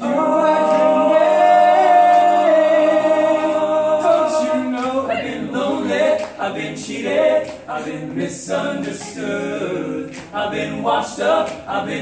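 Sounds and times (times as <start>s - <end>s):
men singing in close harmony: 0.0s - 12.0s.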